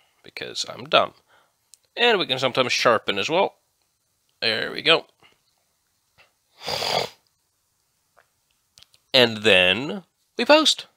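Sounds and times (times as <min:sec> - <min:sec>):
nasal snort: 0:06.6 - 0:07.2.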